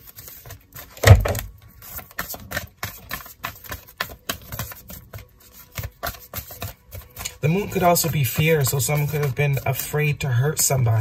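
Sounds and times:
cards clicking while shuffled: 0.0s - 10.2s
dull thump: 1.0s - 1.5s.

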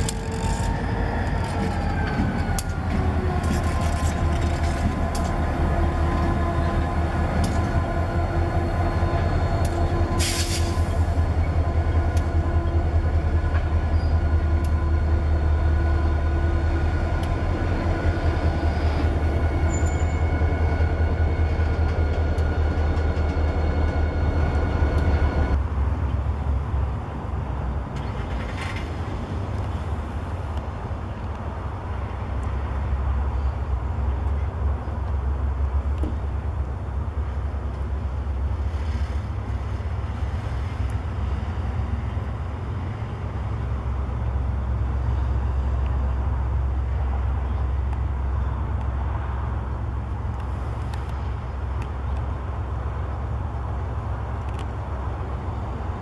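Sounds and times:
wheels clicking over rail joints: 0.0s - 6.4s
locomotive engine rumble: 0.0s - 56.0s.

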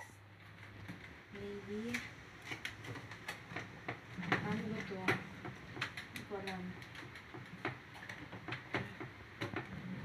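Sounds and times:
case trays clicking and knocking: 2.4s - 10.0s.

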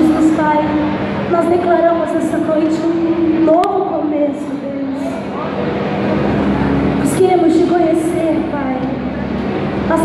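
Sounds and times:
keyboard sustained chord: 0.0s - 10.0s.

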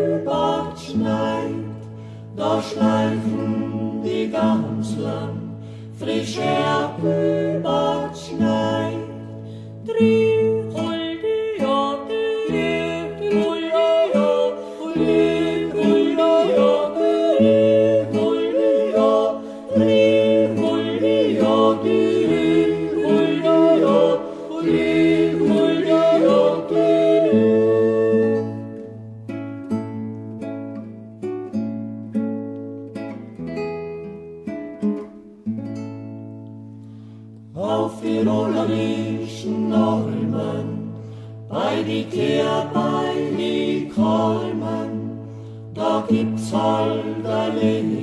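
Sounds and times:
group singing yodel-like: 0.0s - 28.9s, 37.5s - 48.0s
acoustic guitar: 0.0s - 48.0s.

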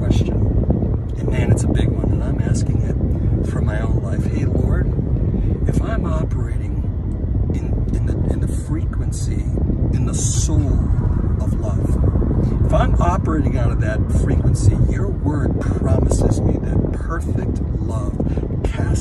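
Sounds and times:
man speaking: 0.0s - 0.5s, 1.1s - 4.9s, 5.6s - 6.9s, 7.5s - 19.0s
car cabin rumble: 0.0s - 19.0s.

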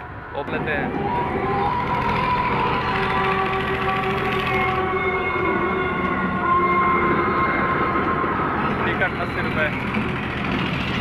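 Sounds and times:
drawn-out whining tones: 0.0s - 11.0s
fairground rides low hum: 0.0s - 11.0s.

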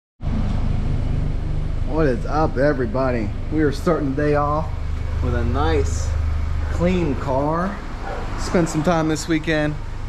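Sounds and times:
car engine idling: 0.2s - 10.0s.

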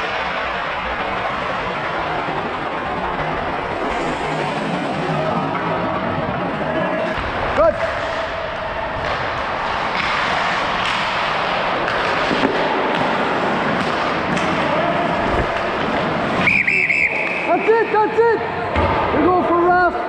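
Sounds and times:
skates scraping on ice: 0.0s - 17.8s
players' voices: 0.0s - 20.0s
referee's pea whistle trilling: 16.4s - 17.5s.

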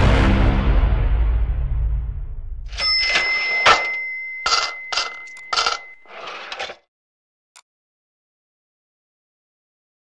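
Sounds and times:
cash register bell ringing: 2.7s - 6.8s.

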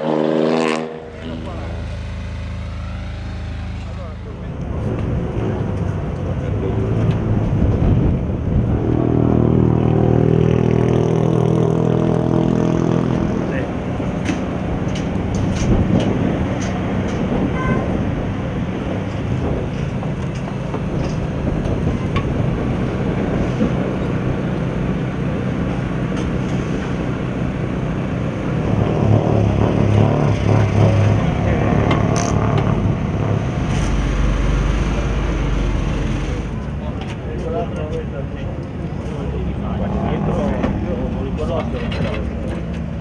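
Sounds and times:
car engine running: 1.1s - 7.5s.

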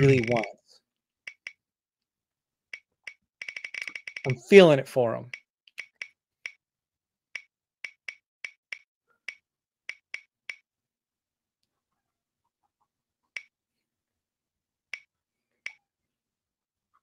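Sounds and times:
spinning wheel ticking: 0.0s - 0.5s, 3.4s - 4.5s.

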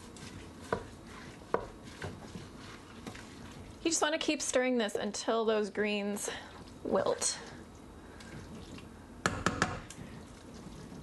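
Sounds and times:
wooden spatula stirring thick food: 0.0s - 5.2s, 6.4s - 11.0s
spatula knocking against pot: 9.2s - 9.9s.

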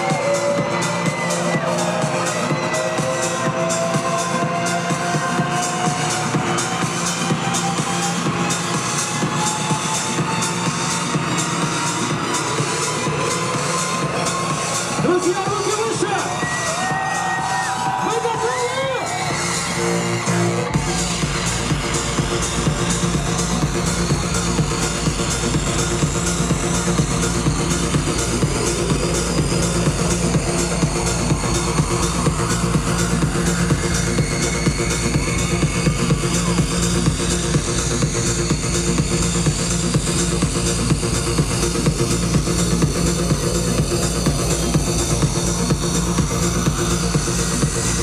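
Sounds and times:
electronic dance music: 0.0s - 48.0s.

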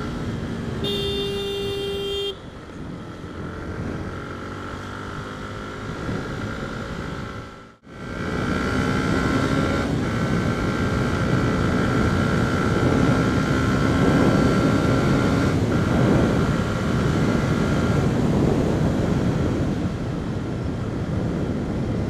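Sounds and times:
motorcycle engine accelerating: 0.0s - 22.0s
wind rush: 8.1s - 22.0s.

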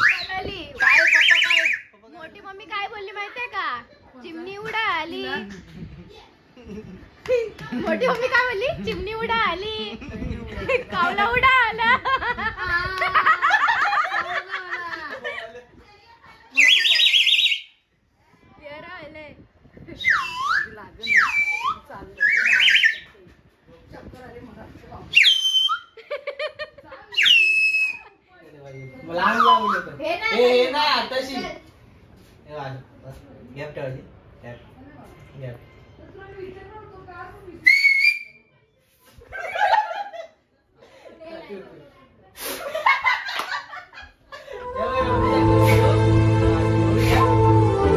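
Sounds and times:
plastic toy flute shrill warbling: 0.0s - 1.9s, 16.6s - 17.8s, 20.0s - 23.2s, 27.2s - 28.0s, 29.3s - 29.9s, 37.6s - 38.4s
person whistling: 45.5s - 46.1s.

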